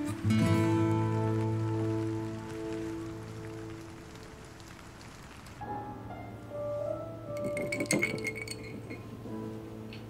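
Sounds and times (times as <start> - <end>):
soft background music: 0.0 - 10.0
ice cubes clinking in a glass: 7.4 - 9.0.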